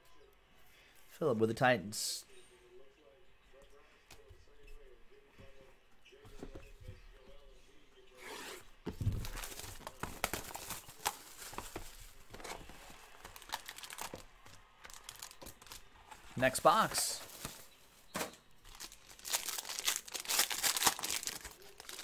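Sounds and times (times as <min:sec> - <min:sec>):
foil packs crinkling: 0:09.0 - 0:17.8, 0:18.6 - 0:22.0.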